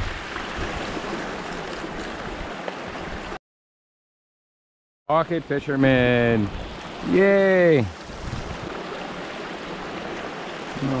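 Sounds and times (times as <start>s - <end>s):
stream water rushing: 0.0s - 3.4s, 5.1s - 11.0s.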